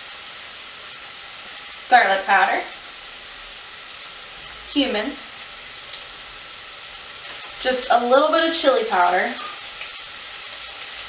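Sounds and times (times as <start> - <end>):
meat sizzling in hot oil: 0.0 - 11.0.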